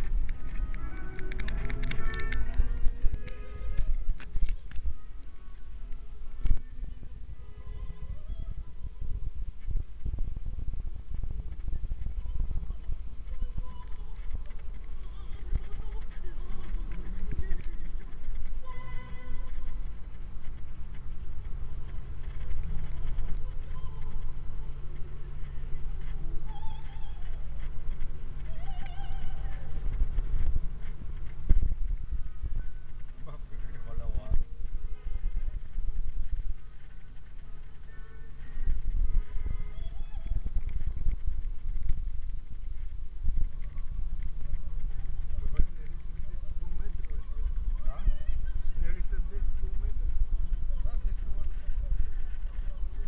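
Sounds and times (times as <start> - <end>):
car engine and tyres rumbling: 0.0 - 53.0.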